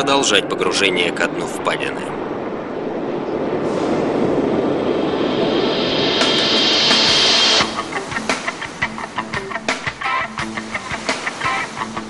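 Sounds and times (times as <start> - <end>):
rushing rumbling noise: 0.1 - 9.7.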